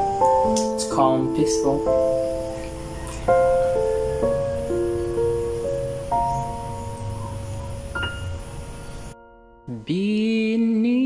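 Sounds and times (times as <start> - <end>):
slow piano notes and chords: 0.0 - 11.0.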